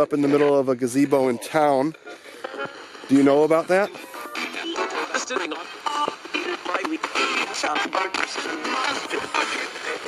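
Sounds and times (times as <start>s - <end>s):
fragments of broadcast music: 0.0s - 10.0s
fragments of broadcast speech: 0.0s - 10.0s
radio scanning through stations: 0.0s - 10.0s.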